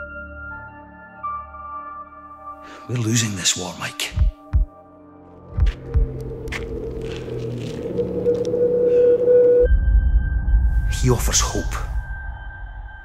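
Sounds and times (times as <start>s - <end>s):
deep low thumps: 4.2s - 4.7s, 5.5s - 7.4s
deep low rumble: 5.6s - 13.0s.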